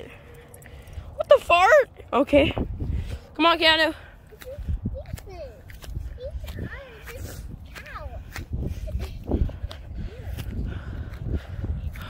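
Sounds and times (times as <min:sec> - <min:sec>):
footsteps through dry grass: 0:04.4 - 0:12.0.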